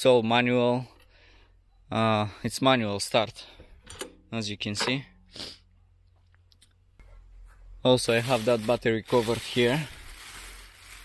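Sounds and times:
person's sharp breath: 0:05.3 - 0:05.7.

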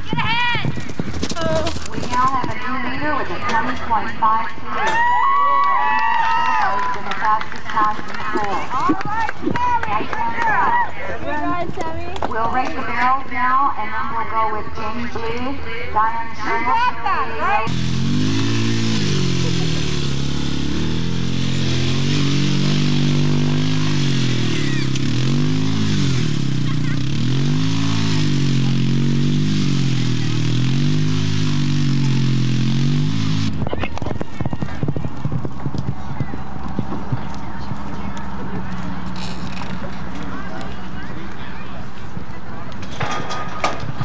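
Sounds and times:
horse galloping on dirt: 0:00.0 - 0:03.4, 0:07.0 - 0:13.2, 0:33.5 - 0:39.0
atv engine revving: 0:16.0 - 0:41.3.

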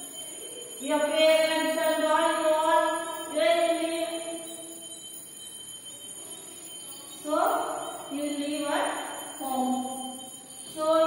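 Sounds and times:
thin steady high tone: 0:00.0 - 0:11.0.

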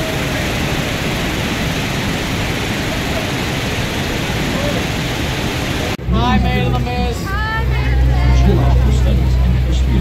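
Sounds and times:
boat engine drone: 0:00.0 - 0:10.0
passengers' voices: 0:06.0 - 0:10.0.

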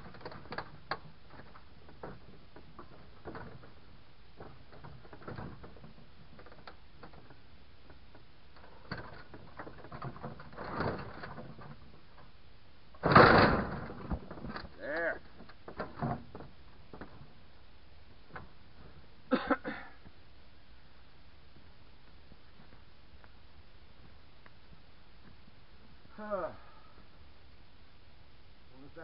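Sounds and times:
heavy tire thud on ground: 0:13.0 - 0:14.5.

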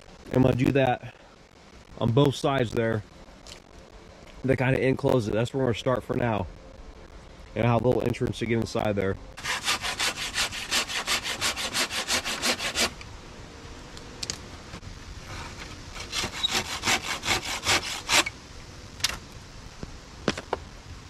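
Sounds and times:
hand saw cutting wood: 0:09.4 - 0:13.0, 0:15.9 - 0:18.3.

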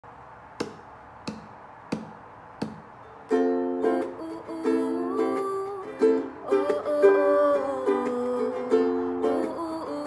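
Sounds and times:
sharp count-in taps: 0:00.6 - 0:02.9
ukulele chord strummed: 0:03.0 - 0:10.0.

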